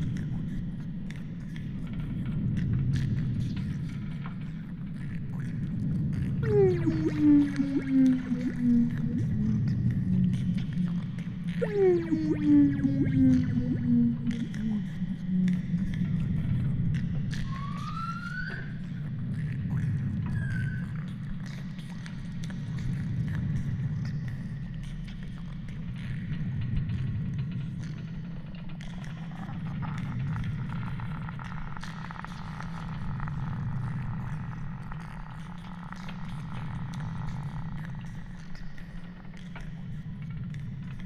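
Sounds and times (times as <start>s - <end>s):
steady low rumble: 1.8s - 17.5s
slowly falling moan-like tone: 6.4s - 16.6s.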